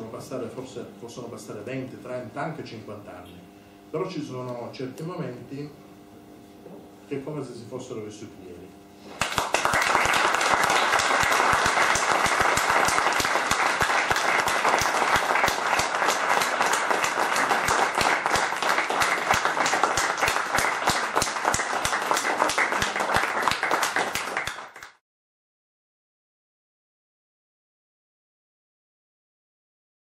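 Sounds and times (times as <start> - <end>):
audience applause: 9.2 - 25.0.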